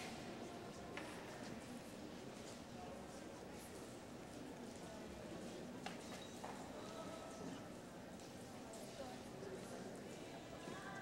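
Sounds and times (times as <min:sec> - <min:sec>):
faint arena ambience: 0:00.0 - 0:11.0.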